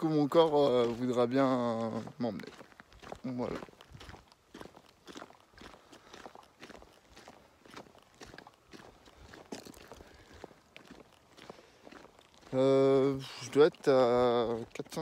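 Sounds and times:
faint footsteps walking: 0.0s - 15.0s.

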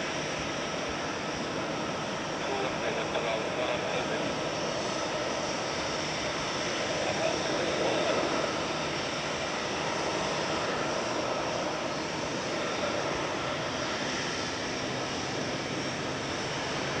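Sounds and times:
jet engines rumbling: 0.0s - 17.0s.

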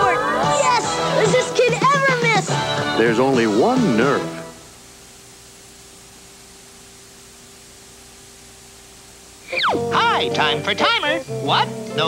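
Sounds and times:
tape hiss: 0.0s - 12.0s.

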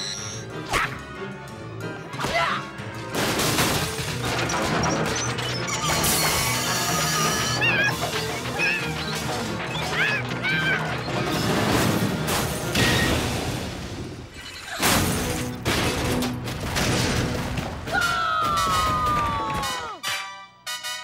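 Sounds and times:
background music: 0.0s - 21.0s
cartoon crashing: 3.2s - 19.8s.

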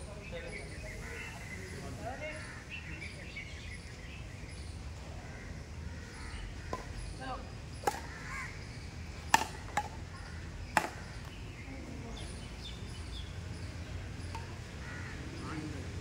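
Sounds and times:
birds calling: 0.0s - 16.0s
rackets hitting shuttlecock: 7.8s - 8.1s, 9.3s - 10.0s, 10.7s - 11.3s.

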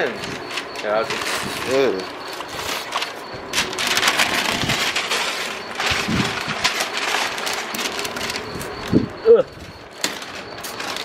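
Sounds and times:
paper crinkling and tearing: 2.5s - 8.7s.

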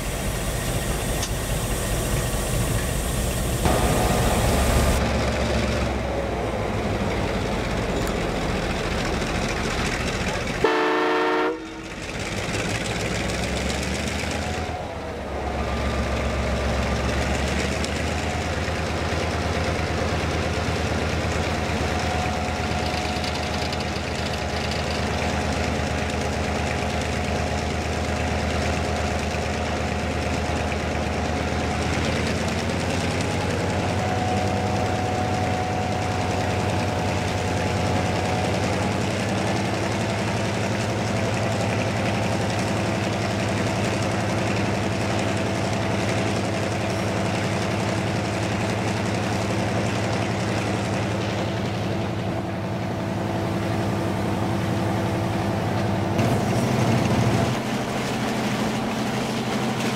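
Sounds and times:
diesel locomotive engine running: 0.0s - 59.9s.

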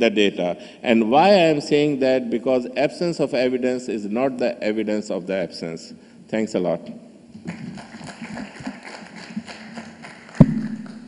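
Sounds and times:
scattered applause: 7.4s - 11.0s.

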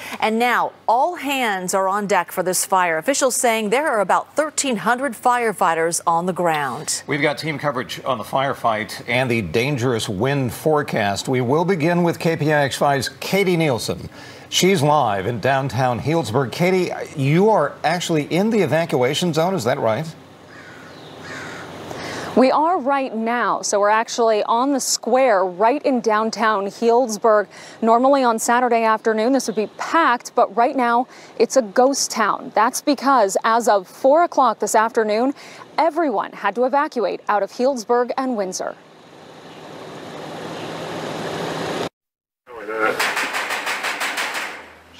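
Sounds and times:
outdoor background noise: 0.0s - 41.9s, 42.5s - 44.9s
faint bird calling: 20.4s - 22.4s
knocking on metal screen door: 43.0s - 44.8s.

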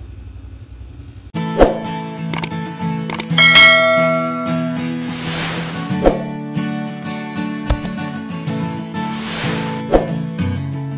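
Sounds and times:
sharp clicks: 2.3s - 3.4s, 7.7s - 8.0s
outro music: 3.1s - 8.2s, 8.8s - 10.4s
bright bell chime: 3.4s - 5.0s.

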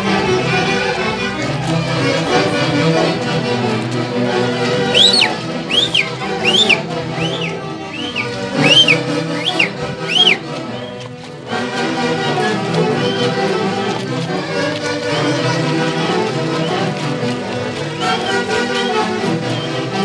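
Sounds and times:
folk dance band playing: 0.0s - 20.0s
high-pitched rising and falling calls: 5.0s - 7.5s, 8.1s - 10.4s.

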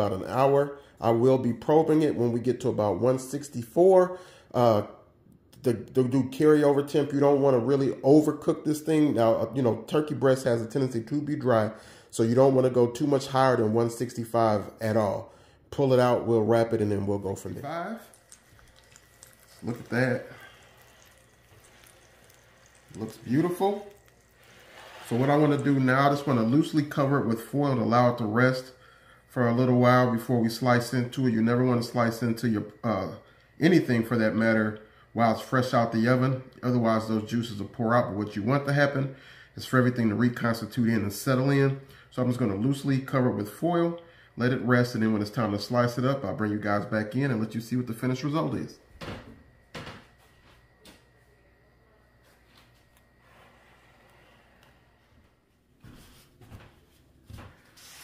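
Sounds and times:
pan juices crackling and sizzling: 17.9s - 26.6s.

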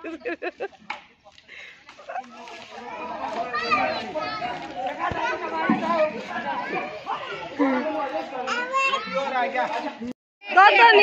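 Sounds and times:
crowd shouting and calling out: 2.5s - 9.8s.

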